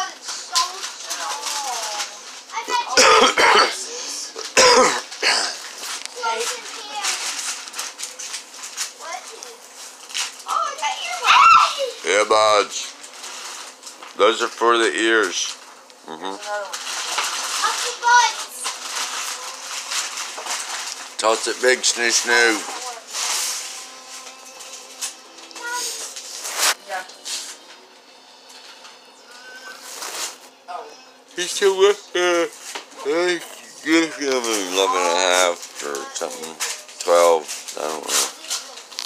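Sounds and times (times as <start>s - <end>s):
paper rustling and crinkling: 0.0s - 3.0s, 3.9s - 27.7s, 28.5s - 30.5s, 32.5s - 39.0s
child's voice: 0.0s - 4.0s, 6.1s - 7.5s, 9.0s - 9.6s, 10.4s - 12.0s, 17.6s - 19.5s, 22.6s - 23.5s, 25.5s - 26.1s, 33.9s - 36.8s, 38.1s - 38.9s
children chattering: 0.0s - 7.4s.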